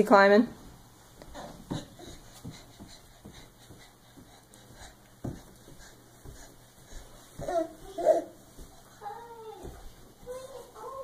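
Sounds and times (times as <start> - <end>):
soft taps of baby crawling: 1.2 - 9.0.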